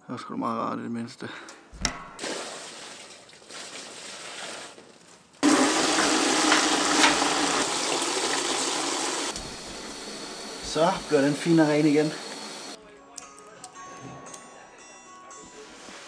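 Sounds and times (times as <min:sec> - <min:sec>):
tap running into bucket: 0:02.2 - 0:12.7.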